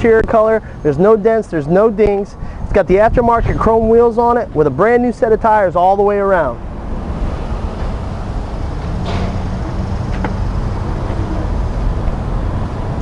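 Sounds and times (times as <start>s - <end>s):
steady low rumble: 2.3s - 13.0s.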